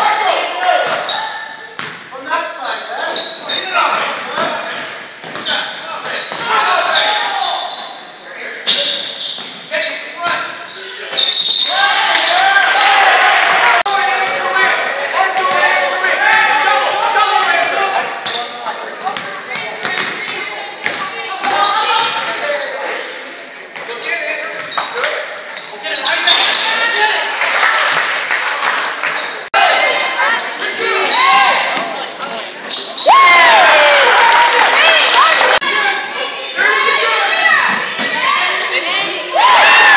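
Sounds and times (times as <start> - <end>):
spectators' voices: 0.0 - 39.9
basketball bouncing on court: 1.8 - 2.1, 19.1 - 21.5
players shouting: 10.2 - 18.2, 33.0 - 39.9.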